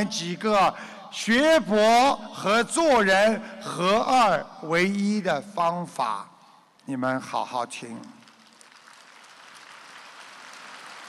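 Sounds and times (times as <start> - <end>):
audience applause: 8.2 - 11.0.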